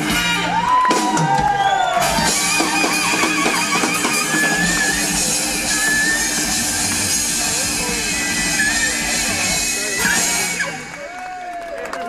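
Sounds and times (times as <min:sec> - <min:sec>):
rock band playing loudly: 0:00.0 - 0:11.0
crowd voices: 0:00.0 - 0:12.0.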